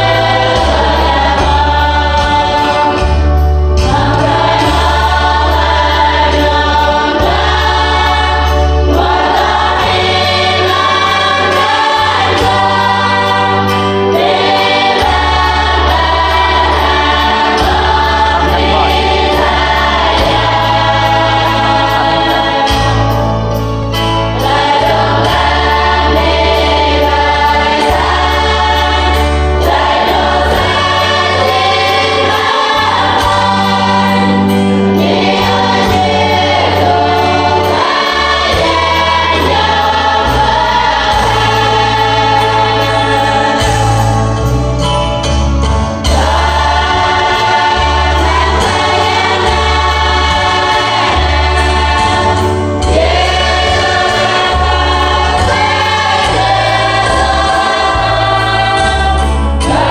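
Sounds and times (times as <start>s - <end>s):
women's choir singing a hymn: 0.0s - 44.9s, 46.0s - 59.9s
low held bass notes: 0.0s - 59.9s.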